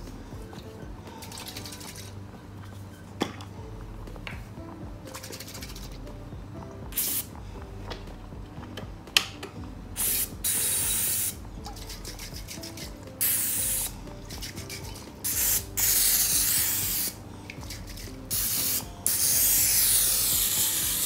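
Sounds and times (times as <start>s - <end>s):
cooking spray hissing: 6.9s - 7.3s, 10.0s - 11.4s, 12.2s - 21.0s.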